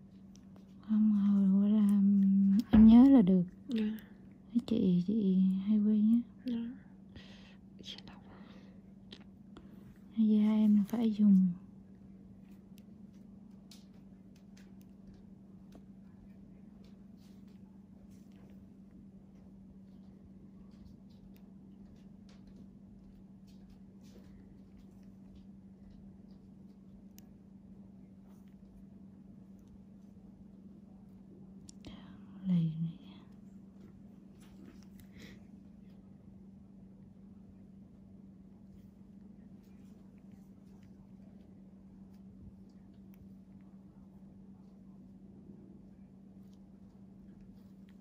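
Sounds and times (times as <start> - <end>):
steady low hum: 0.0 - 48.0
faint whispering: 31.8 - 33.4.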